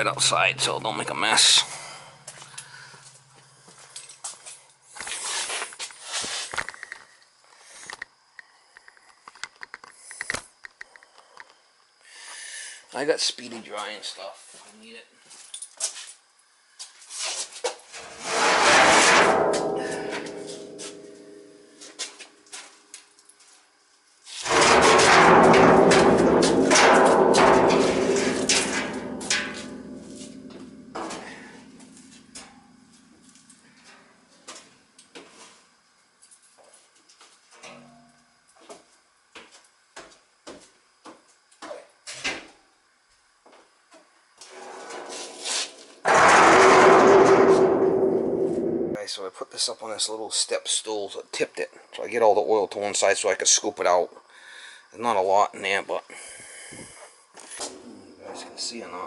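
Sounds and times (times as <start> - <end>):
ringing metal clang: 19.0 - 21.8, 24.5 - 33.0, 37.7 - 38.2.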